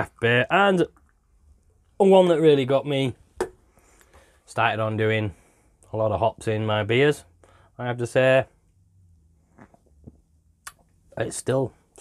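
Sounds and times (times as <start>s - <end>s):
man swallowing: 9.5s - 10.9s.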